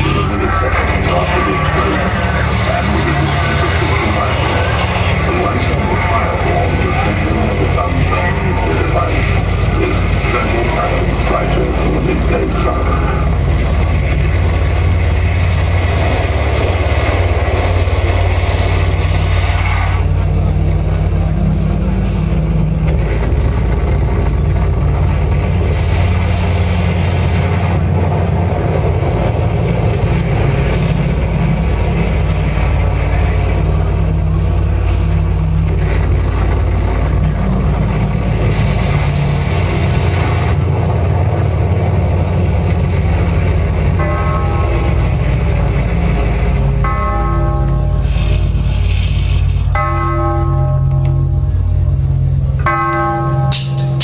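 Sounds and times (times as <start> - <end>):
low band drone: 0.0 - 54.0
tolling bell: 49.7 - 51.6, 52.6 - 54.0.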